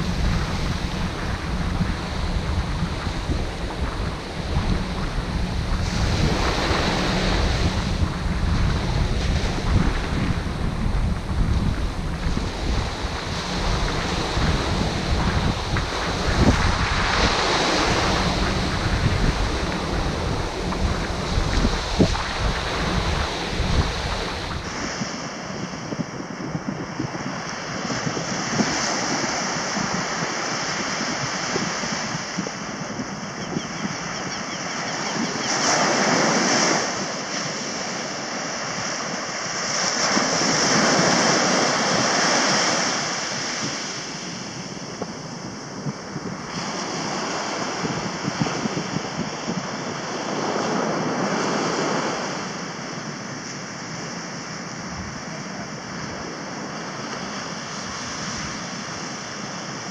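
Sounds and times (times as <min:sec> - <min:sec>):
sea surf breaking on sand: 0:00.0 - 0:59.9
wind rumbling on microphone: 0:00.0 - 0:59.9.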